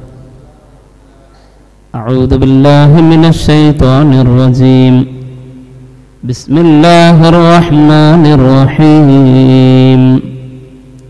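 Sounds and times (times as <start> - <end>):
faint room hum: 0.0 - 11.0
man chanting into a microphone: 1.9 - 11.0.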